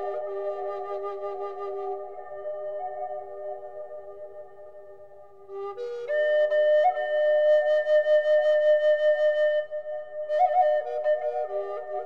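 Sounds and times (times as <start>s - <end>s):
native american flute melody: 0.0s - 12.0s.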